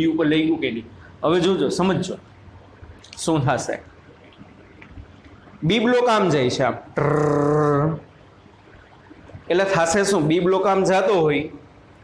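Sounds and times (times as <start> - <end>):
man holding a vowel sound: 7.0 - 8.1.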